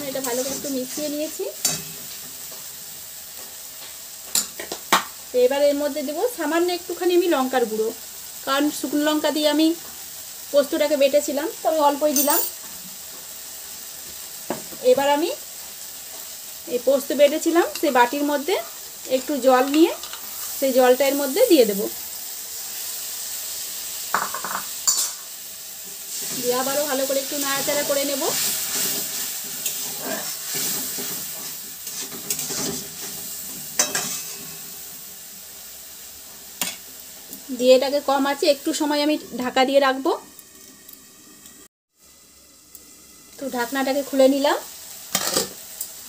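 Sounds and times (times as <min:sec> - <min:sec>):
spatula stirring and scraping pan: 0:00.0 - 0:05.1, 0:24.3 - 0:35.2
paste sizzling in a pan: 0:00.0 - 0:46.0
spatula clinking on metal pan: 0:33.8 - 0:34.2.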